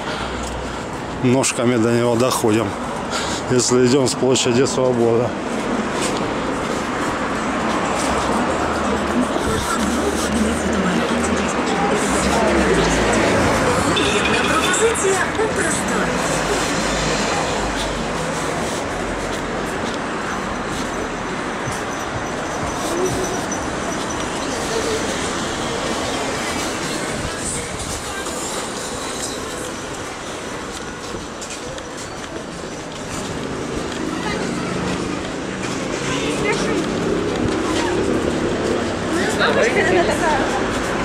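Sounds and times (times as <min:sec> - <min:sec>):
passers-by talking: 0:00.0 - 0:41.0
steady traffic noise: 0:00.0 - 0:41.0.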